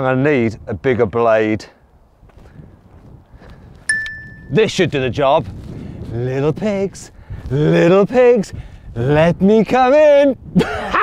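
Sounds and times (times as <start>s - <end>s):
metallic clink ringing: 3.9s - 4.6s.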